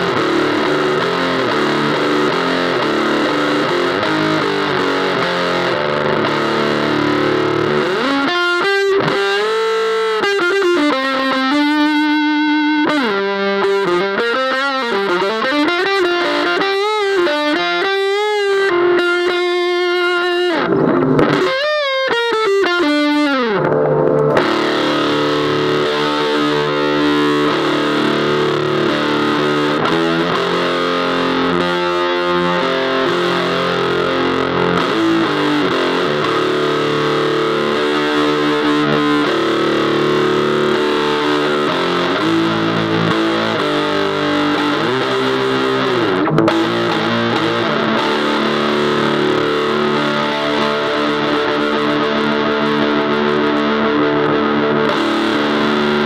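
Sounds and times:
fuzz electric guitar: 0.0 - 56.0.

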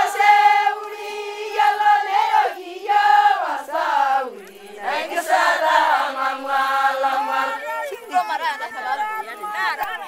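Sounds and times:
people talking at once: 7.0 - 10.0.

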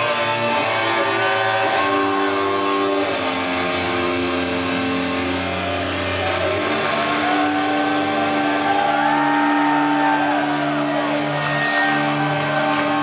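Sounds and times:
distorted electric guitars: 0.0 - 13.0
lead guitar sliding with bends: 0.0 - 13.0.

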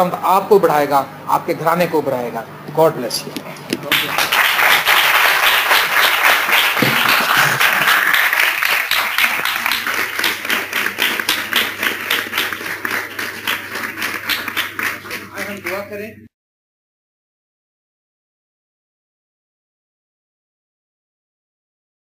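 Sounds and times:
congregation applauding: 3.8 - 16.0.

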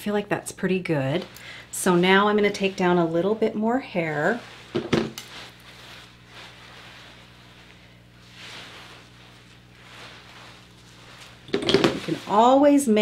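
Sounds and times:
comb strokes through hair: 0.1 - 13.0.

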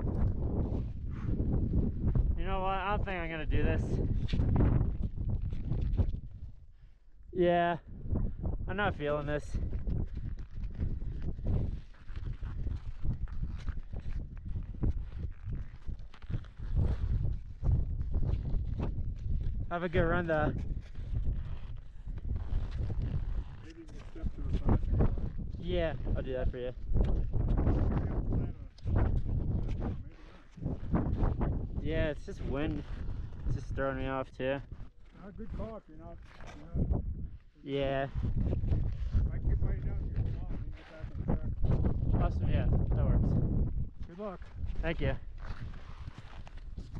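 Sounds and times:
wind buffeting microphone: 0.0 - 46.9.

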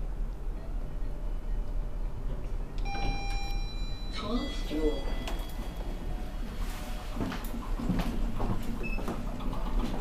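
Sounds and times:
steady low hum: 0.0 - 10.0
electronic elevator chime: 2.8 - 6.3.

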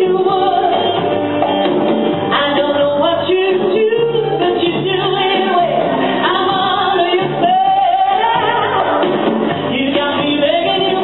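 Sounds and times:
woman singing into microphone: 0.0 - 1.4, 2.2 - 11.0
musical accompaniment: 0.0 - 11.0.

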